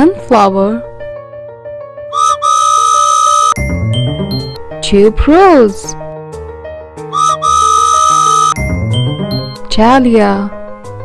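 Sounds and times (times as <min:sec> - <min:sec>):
soft background music: 0:00.0 - 0:01.5, 0:08.6 - 0:11.0
whistle tooting: 0:02.1 - 0:03.6, 0:07.1 - 0:08.6.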